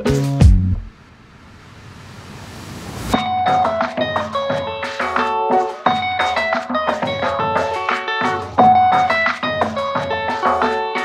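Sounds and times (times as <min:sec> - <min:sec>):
music: 0:00.0 - 0:00.9, 0:03.2 - 0:11.0
whoosh noise rush: 0:00.9 - 0:03.2.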